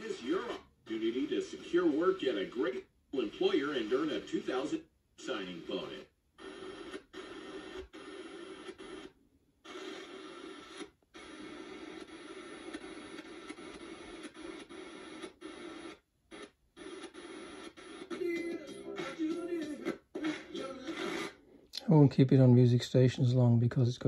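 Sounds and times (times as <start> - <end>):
radio tuning through stations: 0.0 - 22.0.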